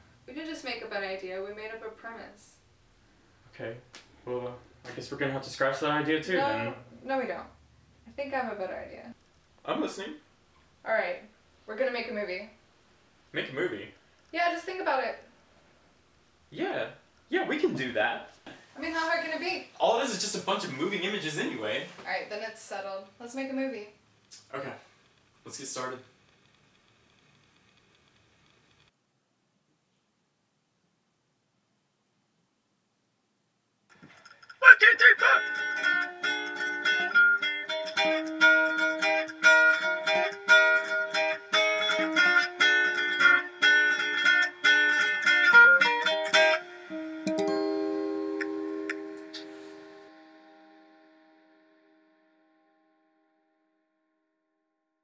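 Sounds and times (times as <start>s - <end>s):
faint clicks: 24.2s - 28.9s
guitar chord ringing: 35.3s - 53.5s.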